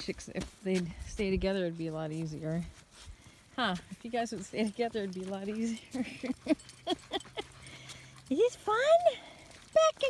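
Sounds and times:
woman laughing: 5.8s - 7.8s.

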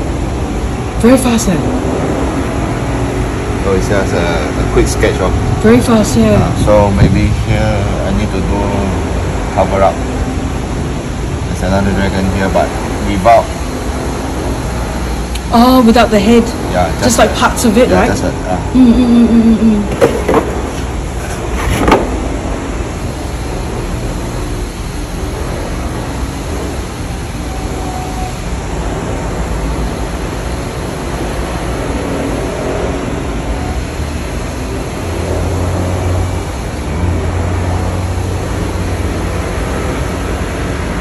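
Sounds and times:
running motor rumble: 0.0s - 41.0s.

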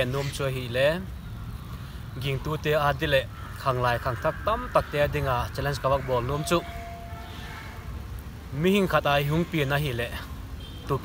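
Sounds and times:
man talking: 0.0s - 1.1s, 2.2s - 6.8s, 8.5s - 10.3s.

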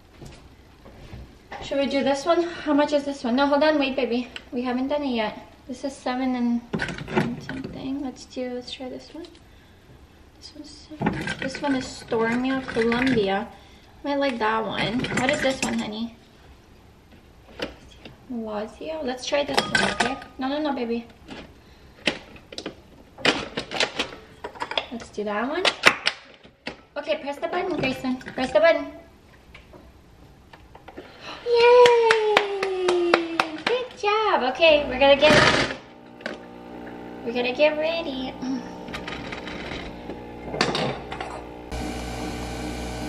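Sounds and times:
coffee machine whirring: 34.8s - 43.0s.

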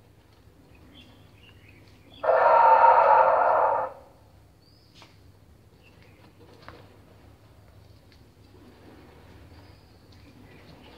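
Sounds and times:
dinosaur roar sound effect: 2.2s - 4.0s.

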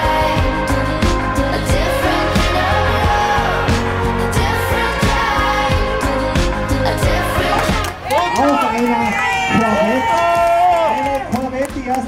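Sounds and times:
crowd noise: 2.0s - 12.0s.

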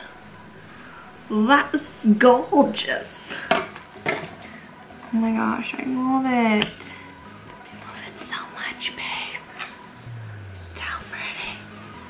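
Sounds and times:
woman whispering: 7.8s - 9.4s, 10.6s - 11.7s
low falling hum: 10.0s - 12.0s.

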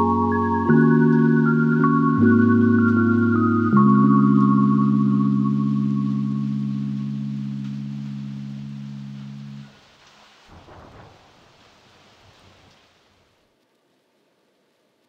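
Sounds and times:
lo-fi hip-hop instrumental: 0.0s - 9.6s
rain-like hiss: 2.6s - 15.0s.

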